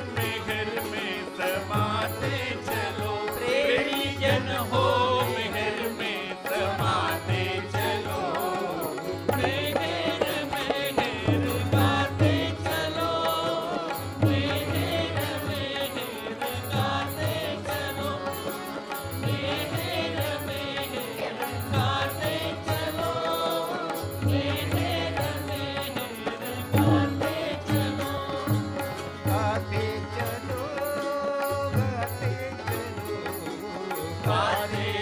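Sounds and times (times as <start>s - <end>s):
devotional chanting to a melody: 0.0s - 35.0s.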